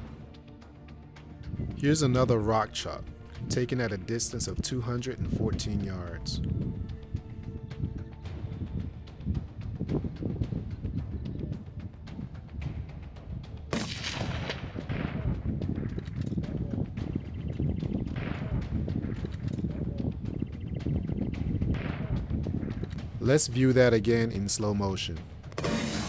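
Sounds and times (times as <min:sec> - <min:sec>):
rifle shot: 0:13.7 - 0:15.4, 0:25.5 - 0:26.0.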